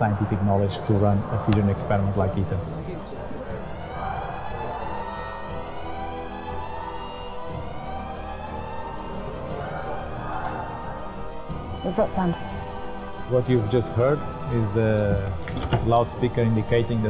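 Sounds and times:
siren-like tone over loudspeaker: 0:02.1 - 0:17.0.

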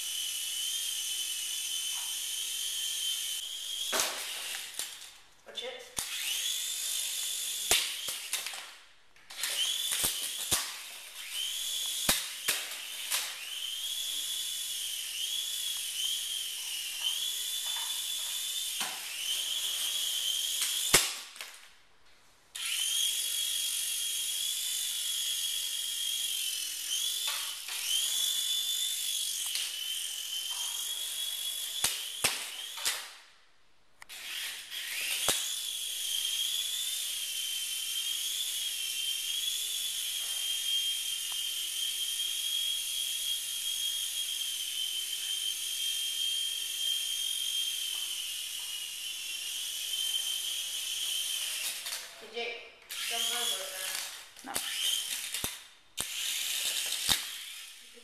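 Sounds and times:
small helicopter motor whining: 0:00.0 - 0:21.0, 0:22.6 - 0:33.1, 0:34.1 - 0:58.0.

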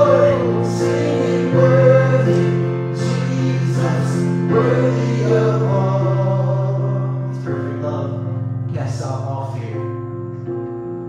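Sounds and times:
man singing: 0:00.0 - 0:09.6
electronic keyboard chords: 0:00.0 - 0:11.0.

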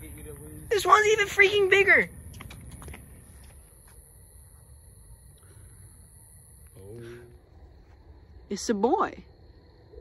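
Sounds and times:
night insects chirring: 0:00.0 - 0:10.0.

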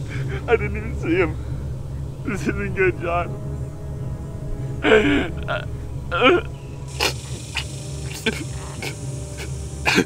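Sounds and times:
man crying out in pain: 0:04.8 - 0:10.0.

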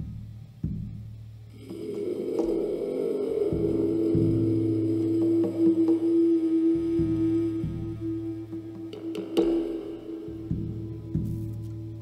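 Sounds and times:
sustained drone of held tones: 0:01.5 - 0:12.0.

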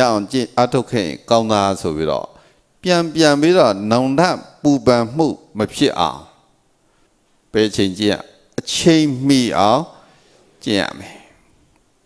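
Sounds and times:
man talking into a microphone: 0:00.0 - 0:06.4, 0:07.5 - 0:11.4.

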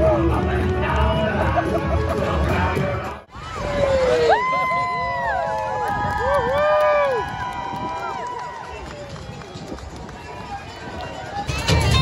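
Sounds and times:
voices whooping and calling out: 0:03.3 - 0:09.6.

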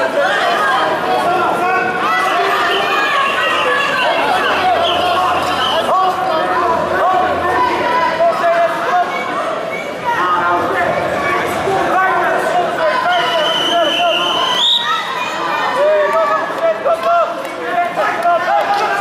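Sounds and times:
crowd chatter echoing: 0:00.0 - 0:19.0.

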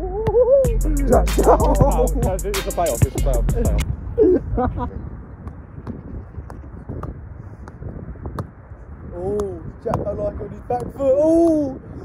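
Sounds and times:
wind rumbling on microphone: 0:03.2 - 0:12.0
football kicked: 0:05.4 - 0:08.6.

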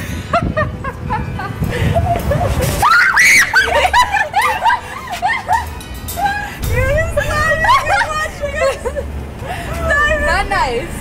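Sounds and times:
woman screaming in fright: 0:02.8 - 0:03.8.

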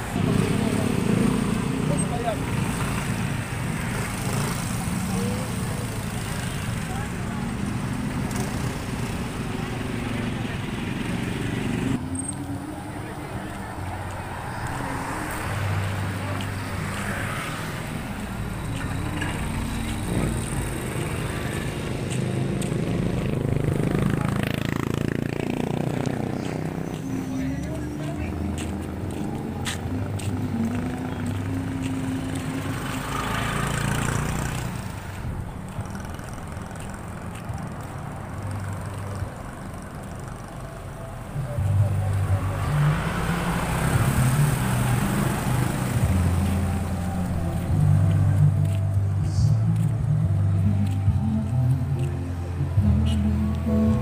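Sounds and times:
background voices: 0:00.0 - 0:54.0
cars passing: 0:00.0 - 0:54.0
low hum of engines: 0:00.0 - 0:54.0
motorcycles passing: 0:00.0 - 0:54.0.

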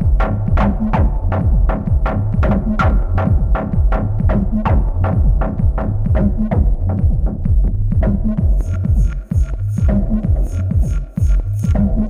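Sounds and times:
deep sliding bassline: 0:00.0 - 0:12.0
kick drum: 0:00.0 - 0:12.0.

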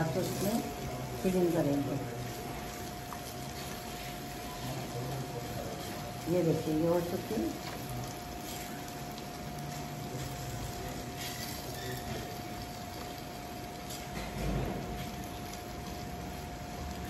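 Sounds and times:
spatula scraping in a pan: 0:10.2 - 0:12.5.

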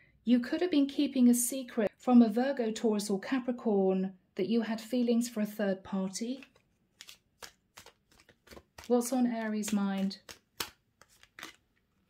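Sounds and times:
cards snapping: 0:06.4 - 0:11.8.

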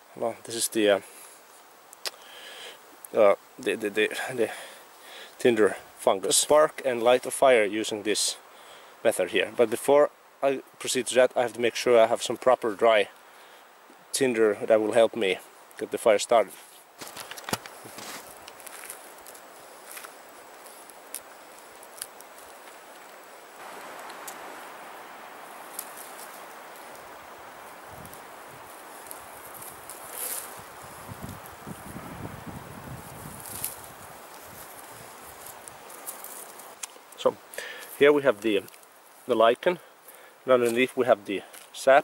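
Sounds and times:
steady hiss: 0:00.0 - 0:42.0
rustling and snapping of bark: 0:01.2 - 0:03.6, 0:15.5 - 0:15.9, 0:16.5 - 0:32.0, 0:33.0 - 0:41.8
footsteps in snow: 0:16.4 - 0:24.7, 0:25.4 - 0:37.0.

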